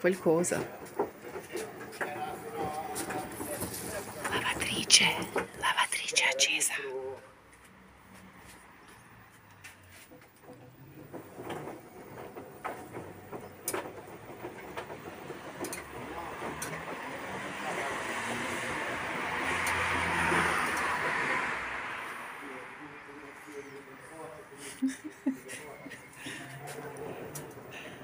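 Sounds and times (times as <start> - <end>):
car passing: 0.0 - 28.0.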